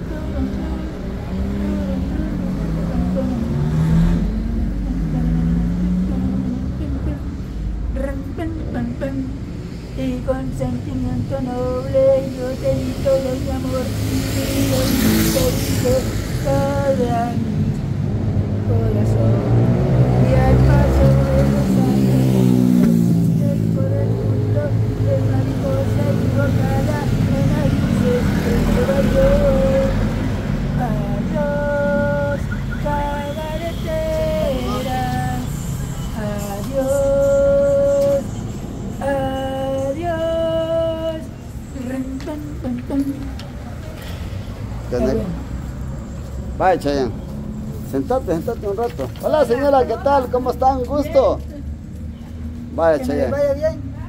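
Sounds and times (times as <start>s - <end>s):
car engine revving: 0.0s - 7.2s
street traffic: 0.0s - 54.0s
car passing close by: 0.2s - 7.8s, 11.6s - 39.0s
man singing unaccompanied: 10.0s - 17.6s, 20.2s - 22.5s, 23.3s - 35.6s, 36.2s - 38.3s, 39.0s - 43.2s.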